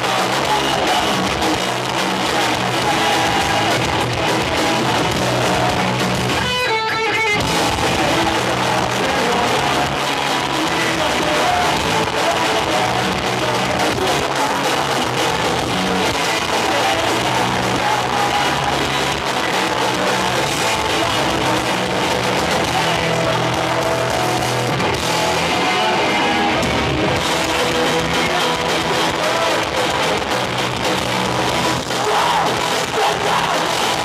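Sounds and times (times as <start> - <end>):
person singing: 0.0 - 34.0
punk band playing loudly: 0.0 - 34.0.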